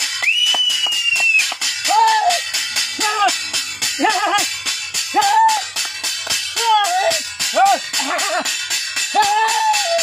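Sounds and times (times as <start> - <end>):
people clapping rhythmically: 0.0 - 2.6, 4.1 - 6.7
long falling whistle: 0.2 - 1.5
person yelling: 1.9 - 2.4, 3.0 - 3.4, 4.0 - 4.5, 5.1 - 5.7, 6.6 - 8.5, 9.1 - 10.0.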